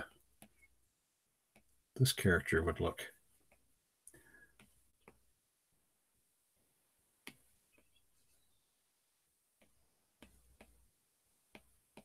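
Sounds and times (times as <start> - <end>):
stylus tapping on tablet screen: 0.1 - 1.9, 3.2 - 5.6, 7.1 - 8.2, 9.4 - 12.0.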